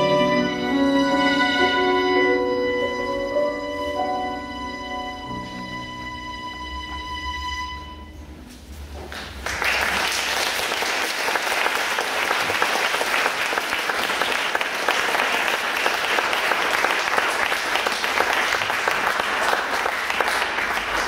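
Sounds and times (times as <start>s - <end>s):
audience applauding: 9.1s - 21.0s.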